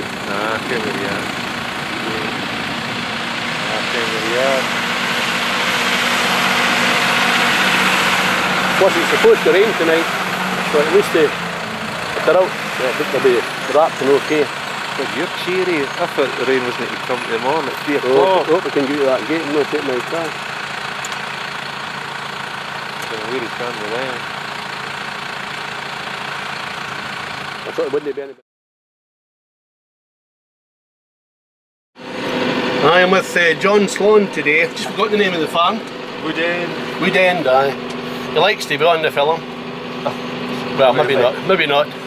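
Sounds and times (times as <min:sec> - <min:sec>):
engine idling: 0:00.0 - 0:28.4, 0:32.0 - 0:42.0.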